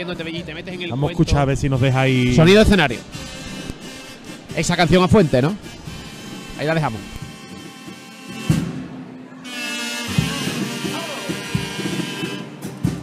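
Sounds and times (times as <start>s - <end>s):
bass drum beats: 0.2s - 7.5s, 10.1s - 13.0s
drum beat: 0.2s - 9.0s, 10.0s - 13.0s.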